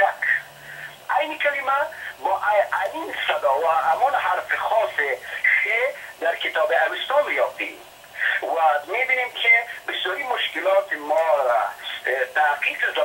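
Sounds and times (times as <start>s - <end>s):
person talking: 0.0s - 0.5s, 1.1s - 13.0s.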